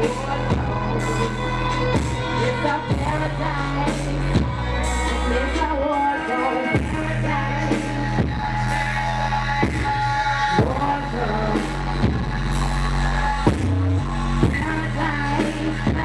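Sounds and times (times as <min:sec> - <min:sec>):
deep sustained bass line: 0:00.0 - 0:06.0, 0:06.8 - 0:16.0
woman singing into microphone: 0:00.0 - 0:12.4, 0:14.4 - 0:16.0.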